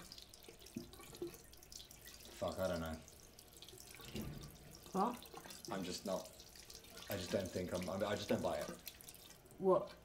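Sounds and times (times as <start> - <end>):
tap water running into sink: 0.0 - 10.0.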